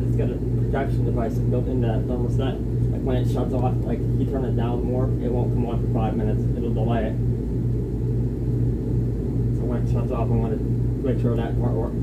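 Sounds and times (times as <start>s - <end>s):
air conditioner airflow rumble: 0.0s - 12.0s
constant low hum: 0.0s - 12.0s.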